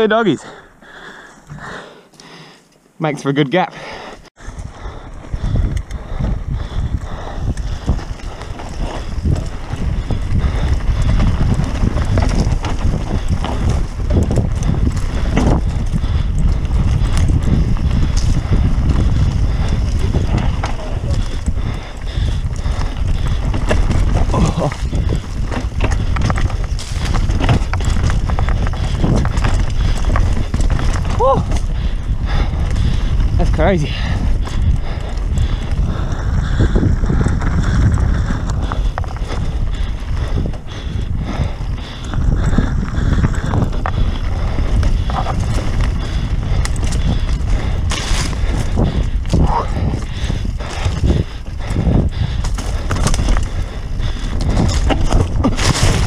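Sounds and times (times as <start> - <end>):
bike tyres rumbling on dirt: 4.1 - 56.0
bike rattling over rough trail: 4.3 - 56.0
wind on microphone: 4.4 - 56.0.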